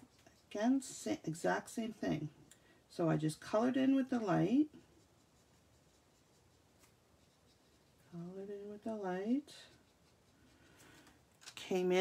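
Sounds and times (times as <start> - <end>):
marker rubbing on cardstock: 4.2 - 8.1, 9.6 - 10.6.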